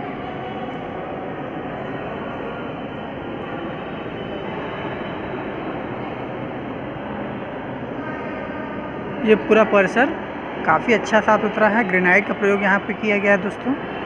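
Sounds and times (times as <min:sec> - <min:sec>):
large hall ambience rumble: 0:00.0 - 0:14.0.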